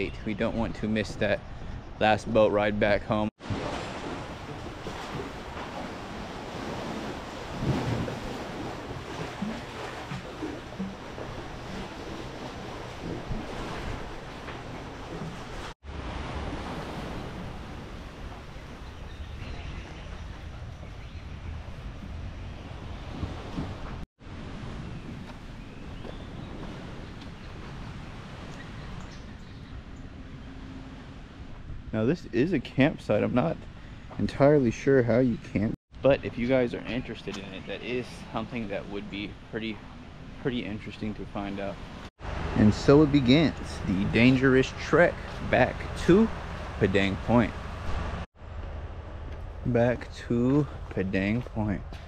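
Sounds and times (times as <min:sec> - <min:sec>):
wind on microphone: 0:03.4 - 0:30.2.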